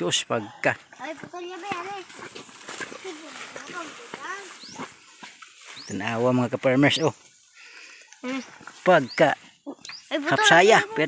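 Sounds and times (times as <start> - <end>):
person making wordless calls: 8.2 - 8.6.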